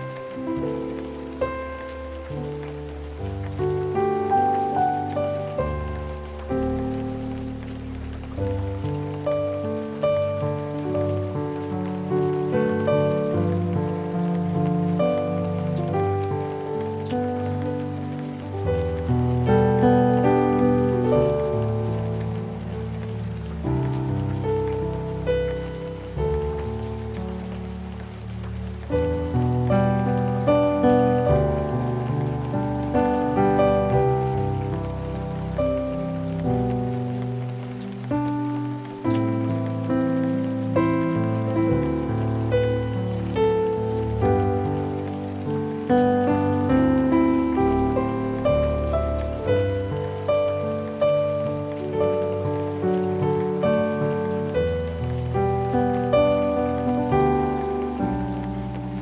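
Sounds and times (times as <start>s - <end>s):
rain falling: 0.0s - 59.0s
solo piano hymn: 0.0s - 59.0s.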